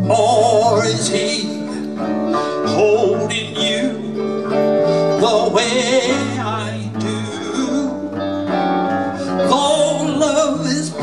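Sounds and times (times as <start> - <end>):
acoustic guitar strumming: 0.0 - 11.0
electric bass line: 0.0 - 11.0.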